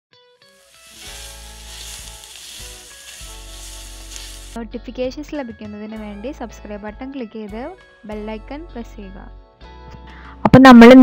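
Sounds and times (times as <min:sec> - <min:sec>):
food sizzling in frying pan: 0:00.4 - 0:04.6
background music: 0:00.4 - 0:11.0.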